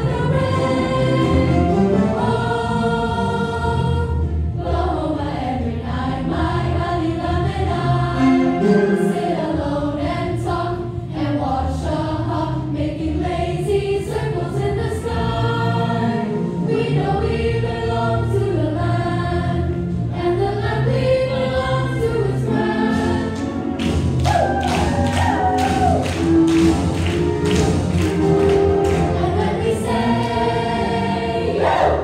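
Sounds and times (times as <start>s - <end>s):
choir singing: 0.0s - 23.8s, 27.5s - 32.0s
sharp percussive beats: 23.8s - 29.4s.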